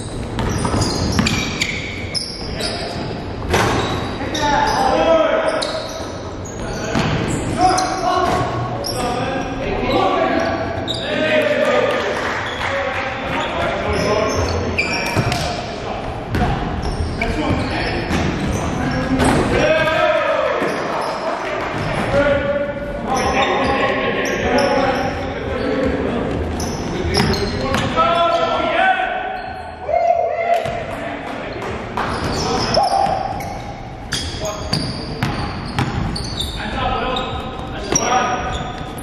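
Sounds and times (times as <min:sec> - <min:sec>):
players calling out: 0:16.3 - 0:39.0.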